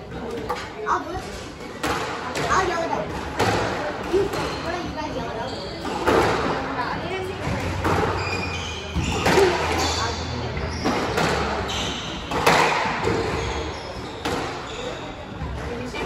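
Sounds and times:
squash ball hits echoing: 1.8 - 4.7, 5.8 - 15.6.

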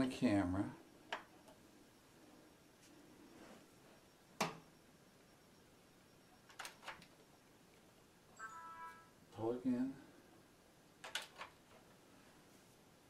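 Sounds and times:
short electronic chime: 8.4 - 9.2.

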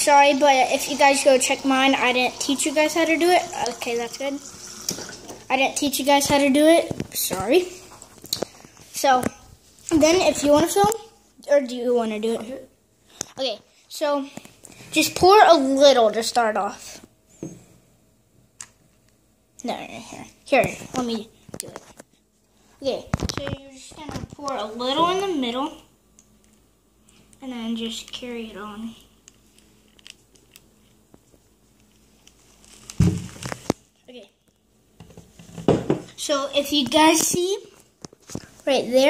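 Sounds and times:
handling knocks and crinkling: 29.2 - 36.2.

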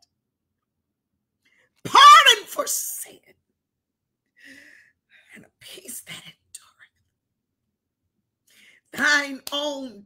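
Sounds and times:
woman whispering: 5.2 - 7.1.

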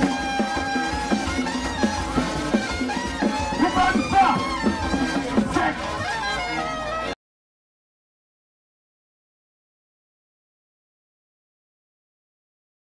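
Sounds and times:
steady drum beat: 0.0 - 6.7.

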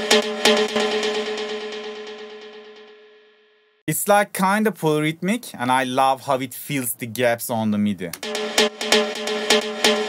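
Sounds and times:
synthesized techno lead echoes: 8.2 - 10.0.

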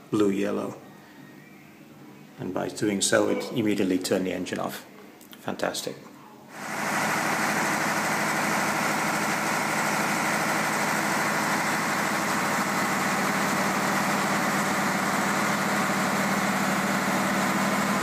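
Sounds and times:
diesel generator running: 6.5 - 18.0.

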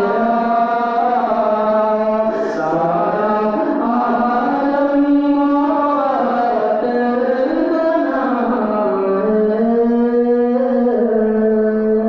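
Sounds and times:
men singing devotional verse: 0.0 - 12.0.

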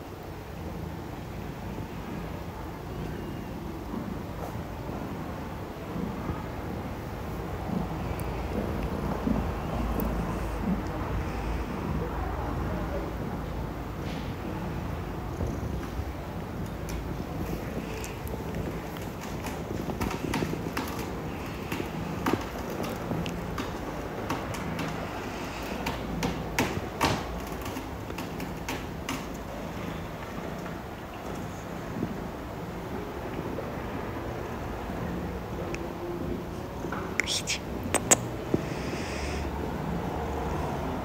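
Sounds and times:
kitten purring: 14.8 - 25.8
grooming clicks and rustles: 16.6 - 32.2.

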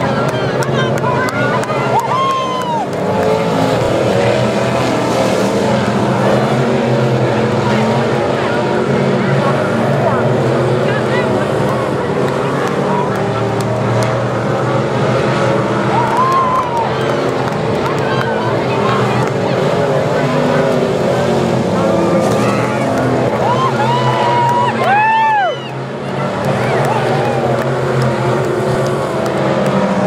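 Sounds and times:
race car engines droning: 0.0 - 30.0.

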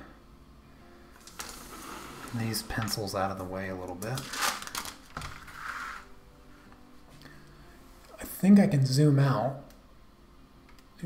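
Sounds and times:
pencils rustling on table: 1.2 - 3.0, 4.0 - 6.2.

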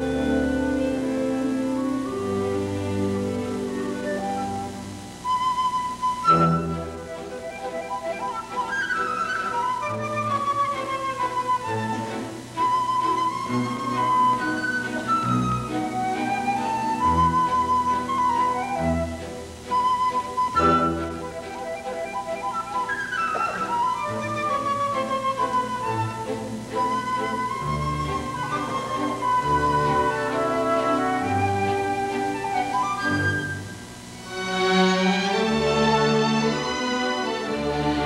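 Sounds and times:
orchestra playing ballet music: 0.0 - 38.0.

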